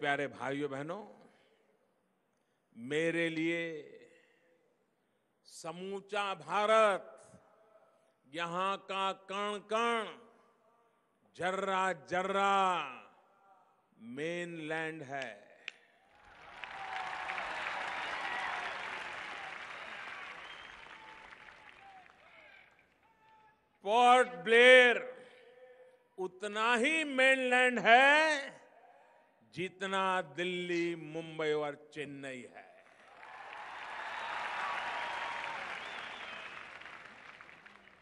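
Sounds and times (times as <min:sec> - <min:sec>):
audience clapping: 0:16.1 - 0:23.2, 0:32.9 - 0:38.0.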